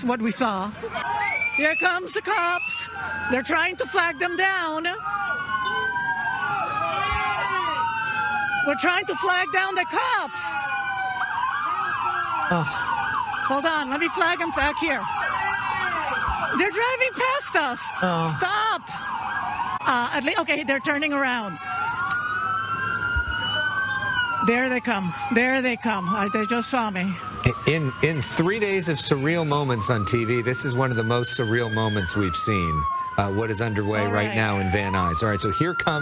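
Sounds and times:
police sirens wailing: 0.0s - 36.0s.

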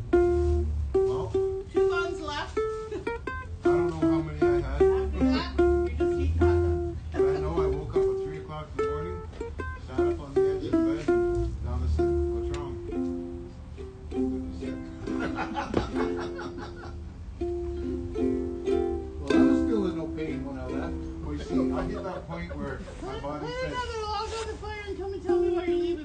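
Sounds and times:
ukulele plucked melody: 0.0s - 22.4s, 25.0s - 26.0s.

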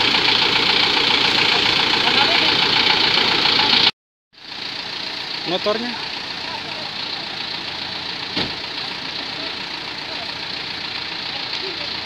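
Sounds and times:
diesel truck engine passing: 0.0s - 12.0s
sharp knock: 8.4s - 8.6s.

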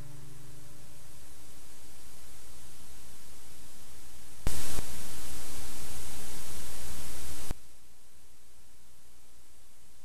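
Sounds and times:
low hum: 0.0s - 7.3s
burst of static: 0.0s - 9.0s
videotape hiss and static: 0.0s - 10.0s.

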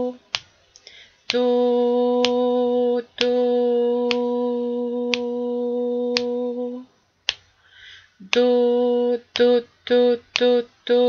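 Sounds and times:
person singing one steady note: 0.0s - 0.3s, 0.9s - 7.0s, 7.7s - 11.0s
metronome clicks: 5.1s - 5.4s, 6.1s - 6.4s.

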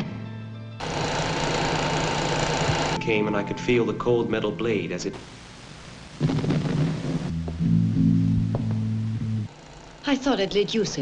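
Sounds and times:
low music chord: 3.0s - 5.0s, 7.3s - 9.5s
faint hiss: 4.5s - 7.4s
low sound: 6.2s - 9.5s.

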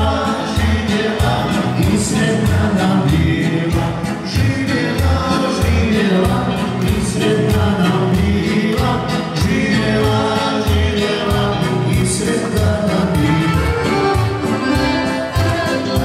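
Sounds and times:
accordion: 0.0s - 16.0s
keyboard: 0.0s - 16.0s
live dance band music: 0.0s - 16.0s
person singing: 0.0s - 16.0s.

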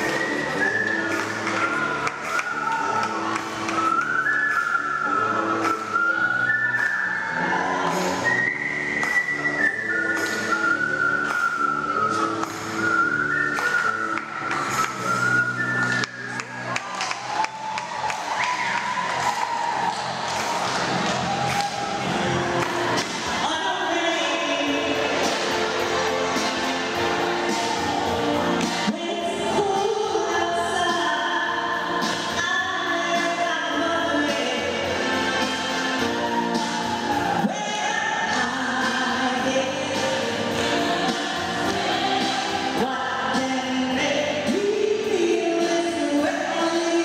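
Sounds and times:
lower musical accompaniment: 0.0s - 47.0s.

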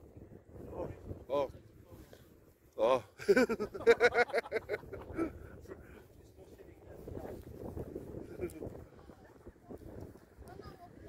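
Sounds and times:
wind rumble on microphone: 0.0s - 2.8s, 3.4s - 11.0s
laughter: 3.2s - 5.4s, 8.2s - 8.7s
voices: 8.3s - 11.0s.

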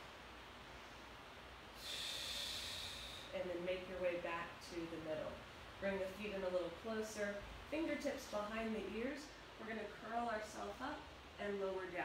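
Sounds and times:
person breathing out: 1.8s - 3.3s.

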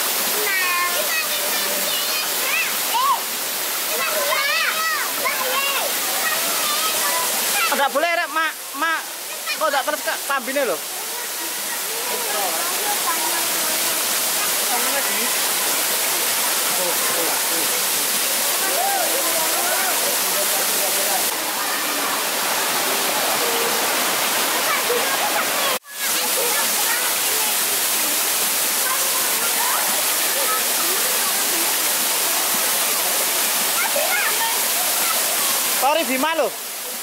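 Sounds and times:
stream running over rocks: 0.0s - 37.0s
waterfall rushing: 0.0s - 37.0s
faint voices: 10.8s - 35.8s.

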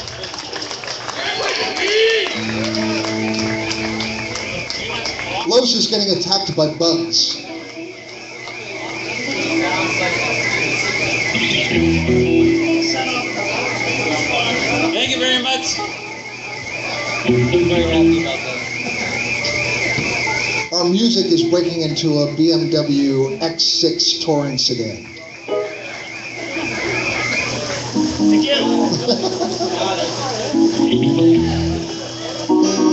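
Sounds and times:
guitar chord with bass notes: 2.4s - 5.0s, 11.4s - 13.2s, 17.3s - 18.4s, 30.6s - 32.9s.

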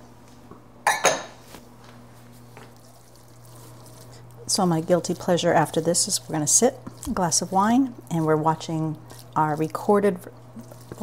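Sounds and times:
low steady hum: 0.0s - 11.0s
wooden spoon against a skillet: 2.3s - 11.0s.

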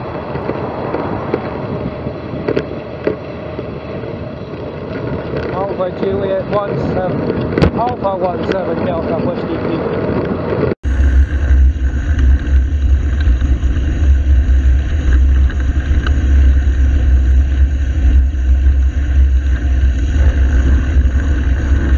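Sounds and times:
wind buffeting microphone: 0.0s - 21.9s
road noise hiss: 10.8s - 21.9s.

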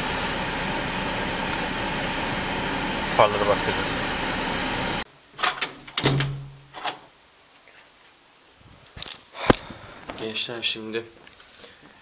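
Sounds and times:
steady noise: 0.0s - 5.1s.

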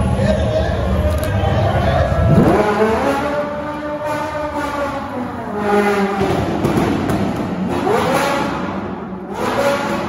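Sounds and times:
car engine revving hard: 2.3s - 10.0s.

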